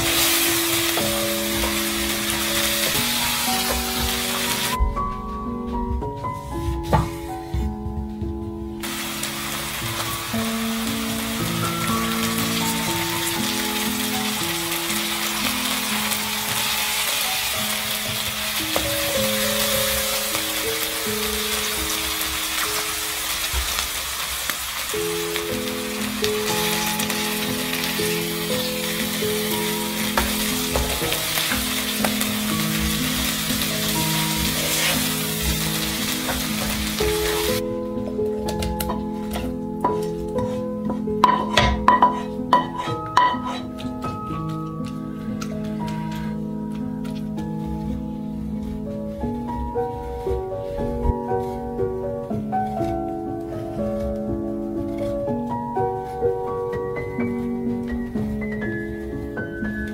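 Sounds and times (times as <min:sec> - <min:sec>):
food sizzling in a pan: 0:00.0 - 0:04.8, 0:08.8 - 0:37.6, 0:38.5 - 0:46.4.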